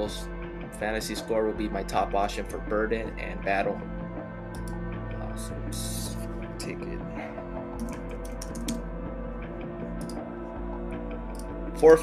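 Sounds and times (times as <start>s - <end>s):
background music: 0.0s - 12.0s
computer keyboard typing: 7.8s - 8.8s.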